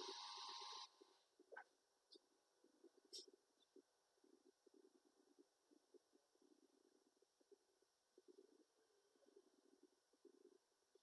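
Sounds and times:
background hiss: 0:00.0 - 0:11.0
faint low crackle: 0:00.0 - 0:11.0.

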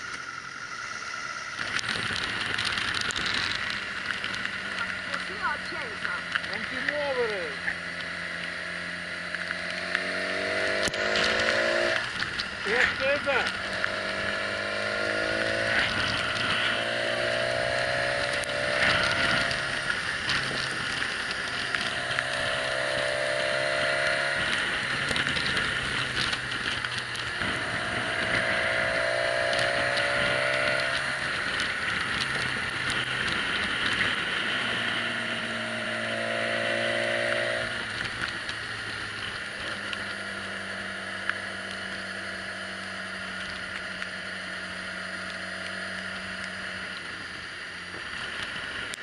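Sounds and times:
motorcycle engine revving: 0:00.0 - 0:49.0
wind rushing on camera: 0:07.9 - 0:49.0.

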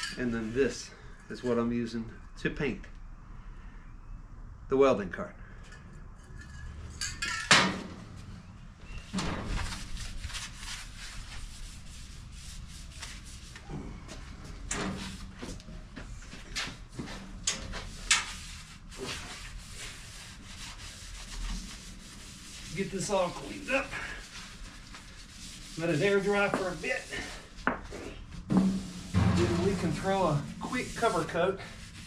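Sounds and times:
paper towel rubbing on steel: 0:09.6 - 0:13.7, 0:17.8 - 0:32.0.

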